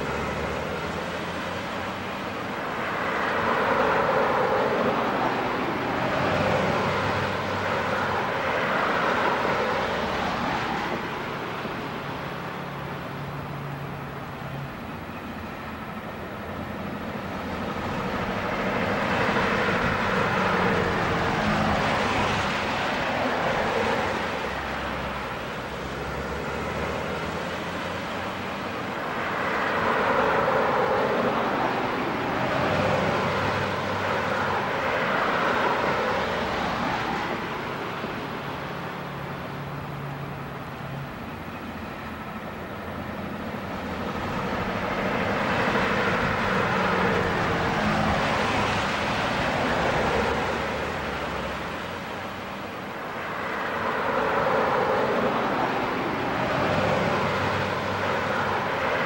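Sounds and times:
road traffic passing: 0.0 - 59.0.

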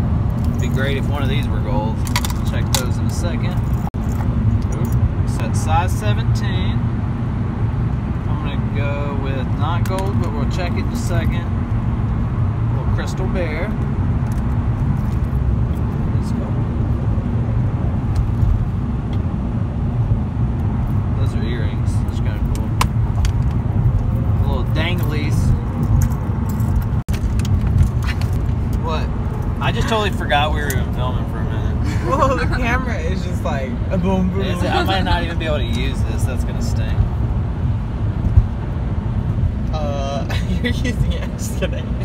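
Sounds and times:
car road and engine rumble: 0.0 - 42.0
metal jewelry clinking: 25.8 - 27.0.

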